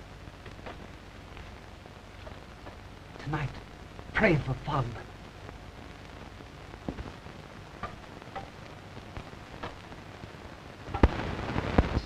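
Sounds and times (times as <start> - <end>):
film soundtrack hiss: 0.0 - 12.0
faint clicks: 6.8 - 10.0.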